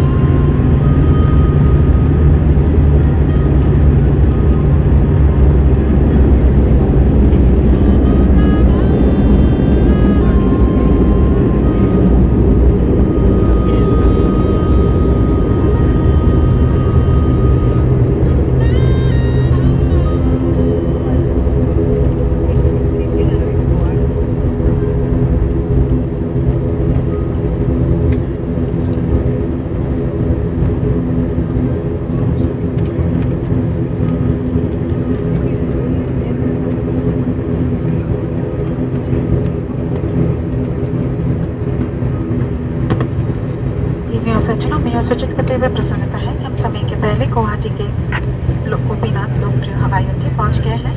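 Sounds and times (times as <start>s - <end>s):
turboprop engines droning in cabin: 0.0s - 50.9s.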